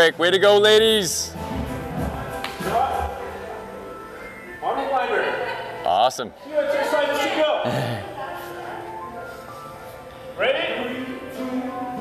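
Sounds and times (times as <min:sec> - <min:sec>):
background music with voice: 0:00.0 - 0:12.0.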